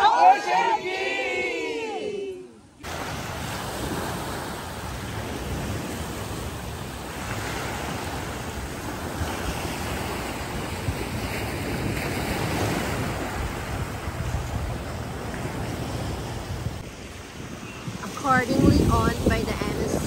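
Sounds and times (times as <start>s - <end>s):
small waves breaking on beach: 2.8s - 20.0s
wind buffeting microphone: 2.8s - 20.0s.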